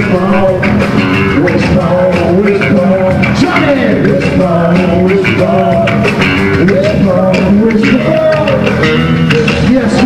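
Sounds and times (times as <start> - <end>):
drums: 0.0 - 10.0
electric bass guitar: 0.0 - 10.0
live band playing: 0.0 - 10.0.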